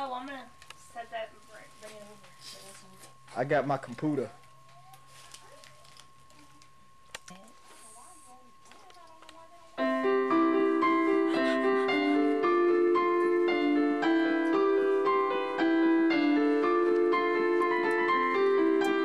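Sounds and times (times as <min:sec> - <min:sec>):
digital piano melody: 0:09.8 - 0:19.0.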